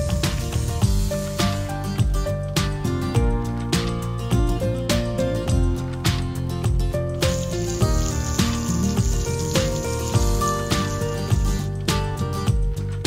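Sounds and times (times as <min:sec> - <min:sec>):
background music with steady beat: 0:00.0 - 0:13.0
hissing: 0:07.2 - 0:11.7.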